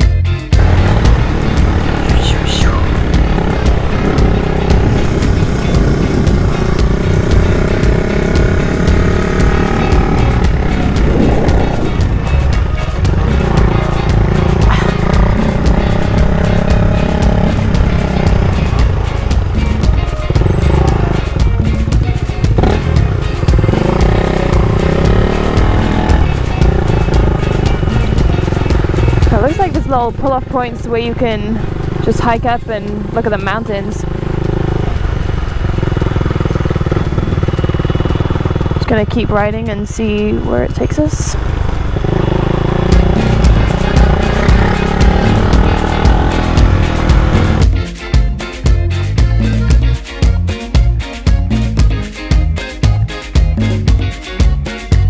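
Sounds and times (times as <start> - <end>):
music with singing voice: 0.0 - 33.6, 42.9 - 55.0
motorcycle riding: 0.0 - 55.0
wind noise on microphone: 3.3 - 9.2, 10.0 - 14.3, 38.1 - 44.8.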